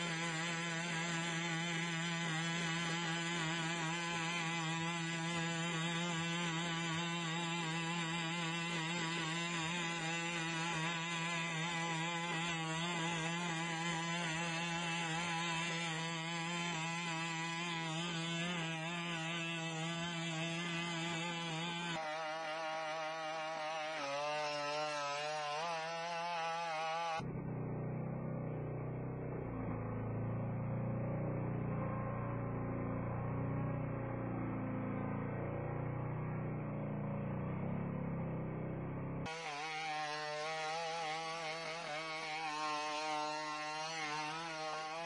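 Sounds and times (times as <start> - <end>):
robot engine buzzing drone: 0.0 - 45.0.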